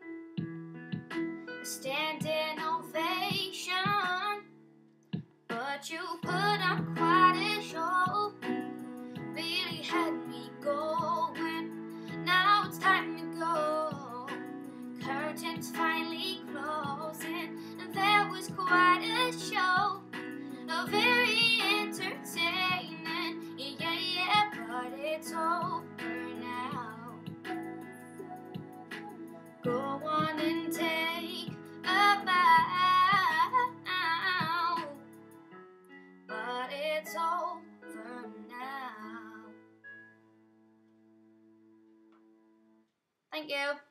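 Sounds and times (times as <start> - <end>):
karaoke backing track: 1.0 - 4.4, 5.5 - 35.5
girl singing: 1.7 - 4.5, 5.5 - 28.7, 29.6 - 35.0, 36.3 - 39.6, 43.4 - 43.9.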